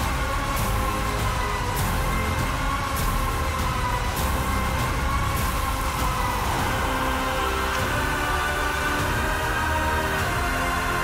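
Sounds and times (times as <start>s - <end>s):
heavy low rumble: 0.0s - 11.0s
held orchestral tones: 0.0s - 11.0s.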